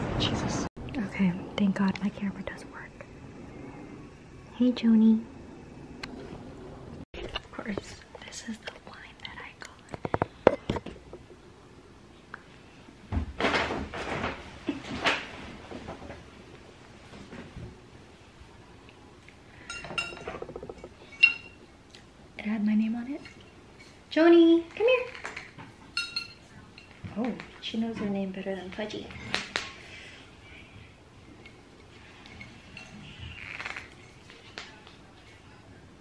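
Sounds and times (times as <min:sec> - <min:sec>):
soft whispering voice: 0:01.0 - 0:03.1, 0:07.2 - 0:10.0.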